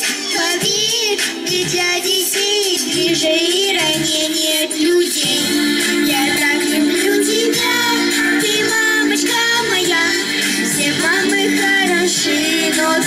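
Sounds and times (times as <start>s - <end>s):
girl singing into microphone: 0.0s - 13.0s
recorded backing track: 0.0s - 13.0s.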